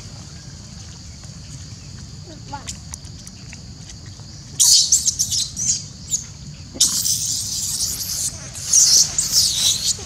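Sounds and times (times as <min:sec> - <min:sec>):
steady high hiss: 0:04.6 - 0:10.0
monkeys shrieking: 0:06.8 - 0:10.0.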